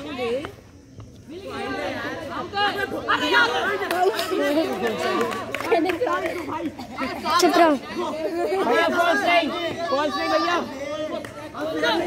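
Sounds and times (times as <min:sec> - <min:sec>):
people calling out and talking: 0:00.0 - 0:12.0.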